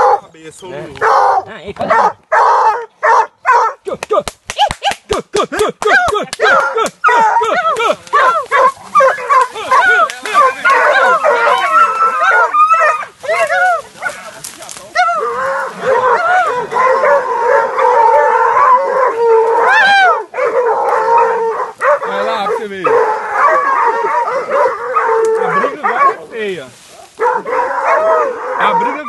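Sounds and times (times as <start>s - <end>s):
dogs barking and yelping: 0.0s - 0.3s, 1.0s - 3.8s, 5.8s - 29.0s
dogs baying: 0.0s - 0.3s, 1.0s - 3.8s, 5.8s - 29.0s.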